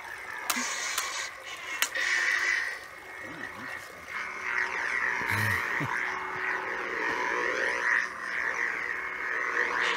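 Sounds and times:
lightsaber humming and swinging: 0.0 - 9.9.

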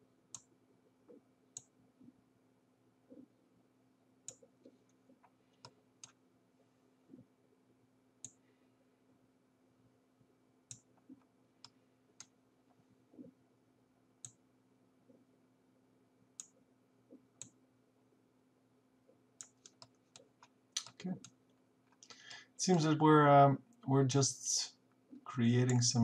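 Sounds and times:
faint low hum: 0.0 - 26.0
computer mouse clicks: 4.2 - 6.2, 10.7 - 12.3, 16.4 - 16.6, 19.4 - 22.2, 25.6 - 26.0.

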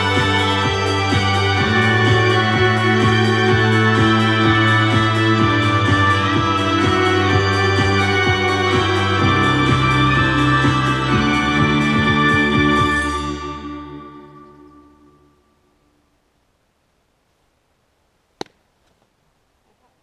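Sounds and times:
electronic music through speaker: 0.0 - 14.7.

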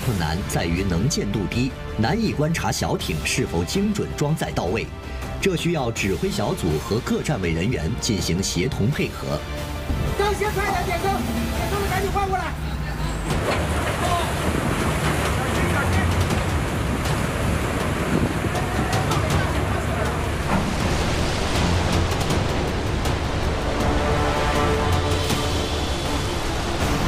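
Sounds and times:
wind and sea rushing: 0.0 - 27.0.

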